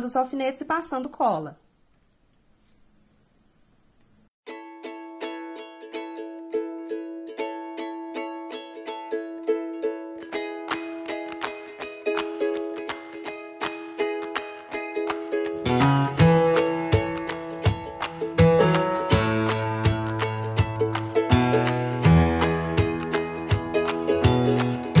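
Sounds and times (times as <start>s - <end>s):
plucked string instrumental music: 4.5s - 25.0s.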